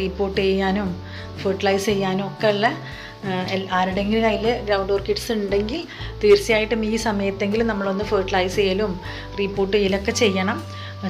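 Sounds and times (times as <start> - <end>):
soft background music: 0.0 - 11.0
woman talking: 0.0 - 11.0.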